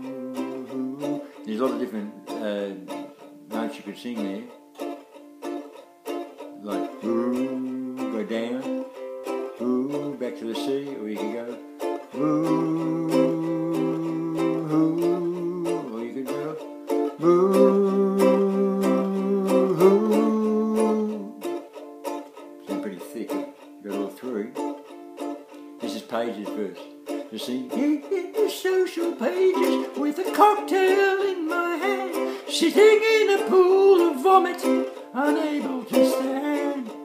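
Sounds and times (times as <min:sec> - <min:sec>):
man singing wordless notes: 0:00.0 - 0:04.6, 0:06.5 - 0:21.6, 0:22.6 - 0:24.7, 0:25.8 - 0:37.0
strummed stringed instrument: 0:00.0 - 0:37.0.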